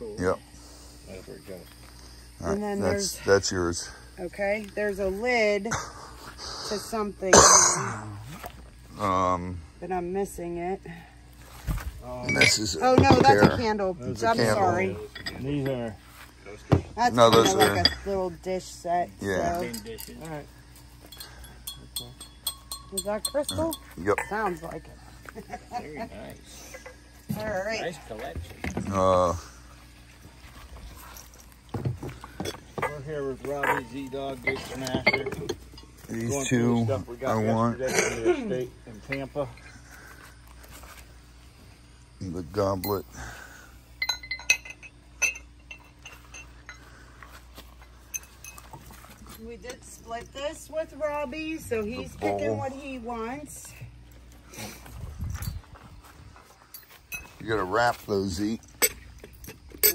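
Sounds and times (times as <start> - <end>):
glass dishes clinking: 12.2 - 13.6, 17.2 - 18.1, 21.1 - 24.4, 33.6 - 36.0, 44.0 - 46.9, 48.1 - 49.0, 56.8 - 57.4, 58.7 - 59.9
glass ringing: 12.2 - 13.7, 17.1 - 18.2, 21.0 - 24.8, 32.4 - 36.9, 43.9 - 46.9, 48.0 - 48.9, 56.7 - 57.4, 58.6 - 59.9.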